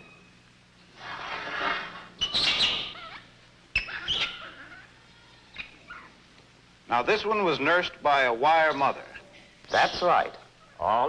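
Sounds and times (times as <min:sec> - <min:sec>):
infant monkey distress calls: 0:02.2 - 0:06.2.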